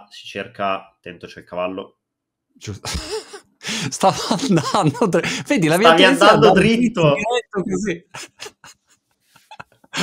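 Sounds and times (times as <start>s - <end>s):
breathy laughter: 2.8s - 3.5s, 8.1s - 10.0s.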